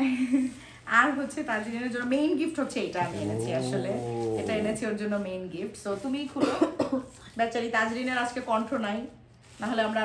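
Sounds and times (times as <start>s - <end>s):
women talking: 0.0s - 10.0s
short cough: 6.4s - 7.1s.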